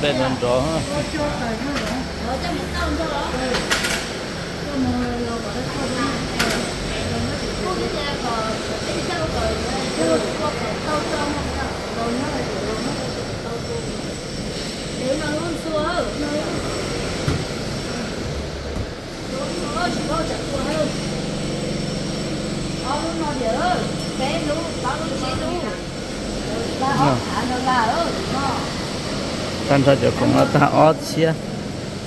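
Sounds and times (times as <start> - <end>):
people talking: 0.0 - 4.0, 4.6 - 14.1, 14.9 - 16.7, 22.8 - 28.7, 29.7 - 31.4.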